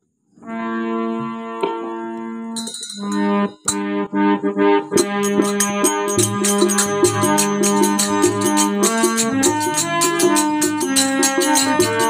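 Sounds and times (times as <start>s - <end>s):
harmonium chords: 0.4s - 12.0s
rhythmic percussion strokes: 2.6s - 4.1s, 4.8s - 12.0s.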